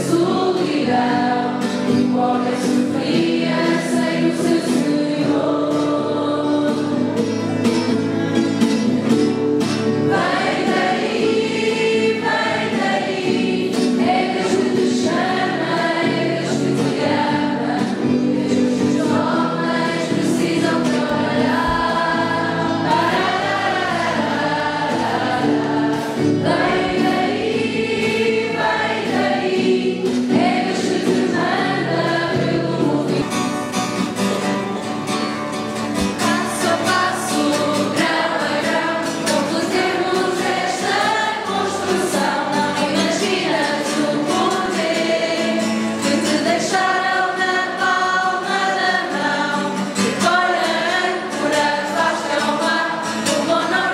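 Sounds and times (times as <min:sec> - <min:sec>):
group singing religious song: 0:00.0 - 0:07.5, 0:08.8 - 0:34.4, 0:36.0 - 0:53.9
strummed acoustic guitars: 0:00.0 - 0:53.9.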